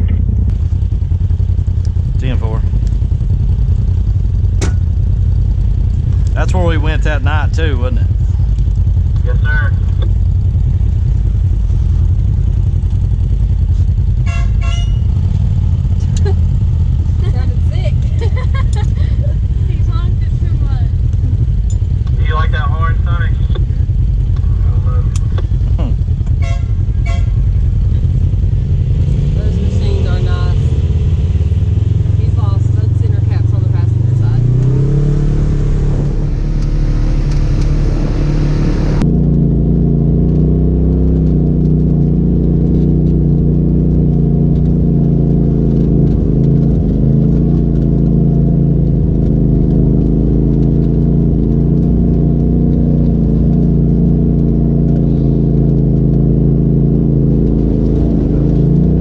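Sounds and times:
utility vehicle engine accelerating: 0:00.0 - 0:59.0
utility vehicle engine on dirt trail: 0:00.0 - 0:59.0.

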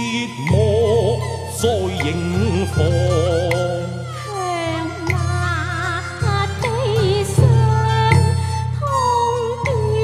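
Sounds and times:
opera ensemble accompaniment: 0:00.0 - 0:10.0
woman singing opera with vibrato: 0:04.2 - 0:10.0.

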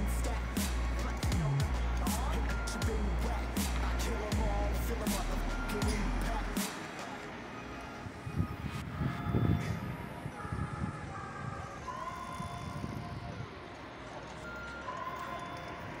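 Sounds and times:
low rumbles: 0:00.0 - 0:06.6
distant emergency siren: 0:00.0 - 0:16.0
street traffic: 0:00.0 - 0:16.0.

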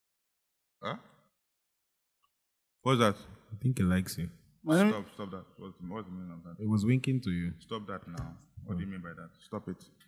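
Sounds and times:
man saying huh: 0:04.7 - 0:05.1.

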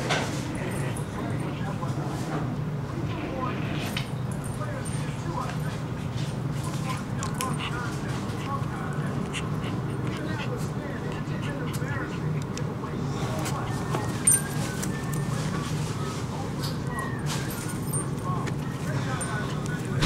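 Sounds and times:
dogs whining and yipping: 0:13.6 - 0:19.6.

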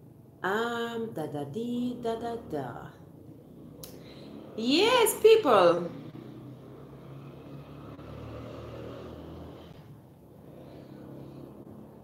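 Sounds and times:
vehicle engine passing: 0:01.6 - 0:12.0.

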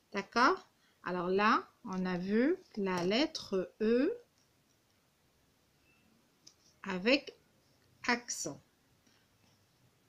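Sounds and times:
woman speaking: 0:00.1 - 0:04.3, 0:06.8 - 0:07.4, 0:08.0 - 0:08.6.

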